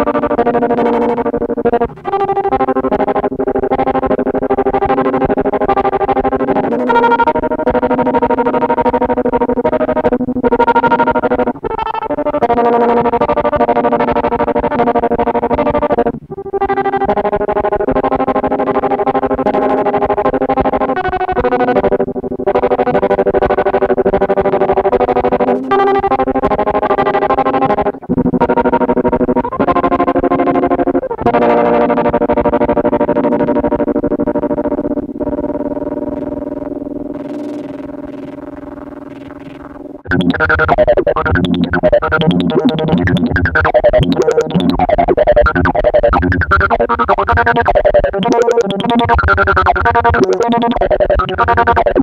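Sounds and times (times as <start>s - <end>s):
pulsing distorted electric guitar: 0.0s - 52.0s.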